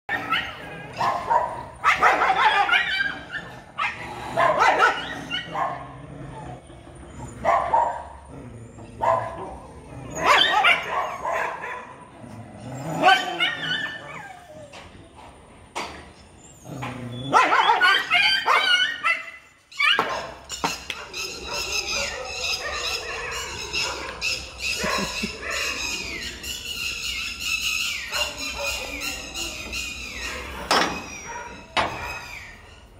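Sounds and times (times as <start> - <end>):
dogs snarling and barking: 0.1 - 32.9
animal squealing: 21.2 - 32.9.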